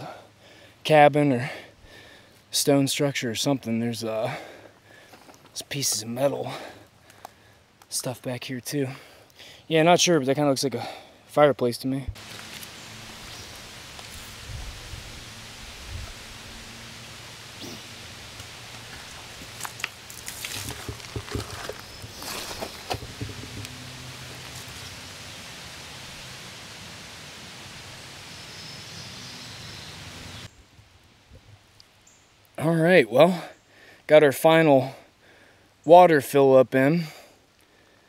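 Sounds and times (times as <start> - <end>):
creekside ambient hiss: 0.0 - 38.0
bottle filling in creek: 17.4 - 28.0
bottle clicks and knocks: 22.9 - 23.8.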